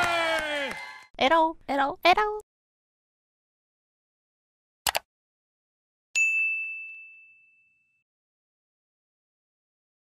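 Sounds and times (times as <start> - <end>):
bright ding: 6.2 - 8.0.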